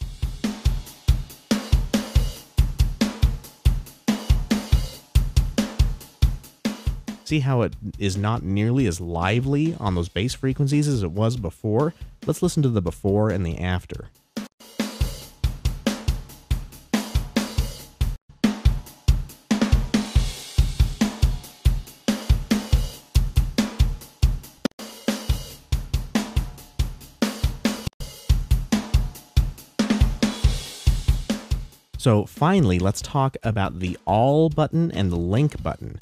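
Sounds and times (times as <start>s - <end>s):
drum kit playing a groove: 0.0s - 36.0s.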